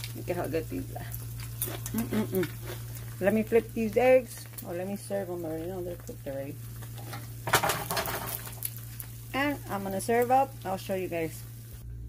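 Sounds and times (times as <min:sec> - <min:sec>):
eggs sizzling in oil: 0:00.0 - 0:11.8.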